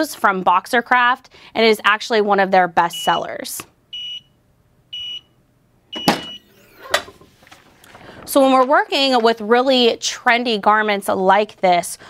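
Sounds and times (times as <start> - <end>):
timer beeping: 4.0 - 4.3, 4.9 - 5.3.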